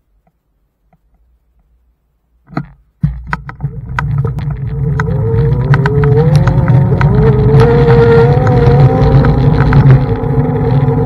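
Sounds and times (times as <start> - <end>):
low rumble: 3.0 - 11.0
scooter rattling over paving: 3.1 - 11.0
electric motor whine: 4.5 - 11.0.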